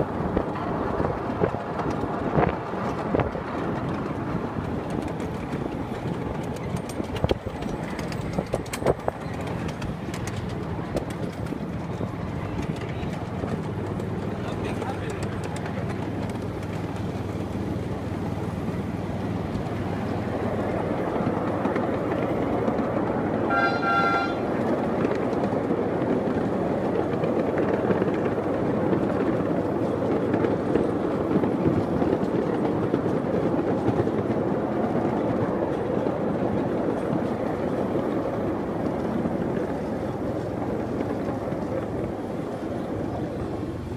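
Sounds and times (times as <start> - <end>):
miniature train running on track: 0.0 - 43.9
train horn toot: 23.5 - 24.6.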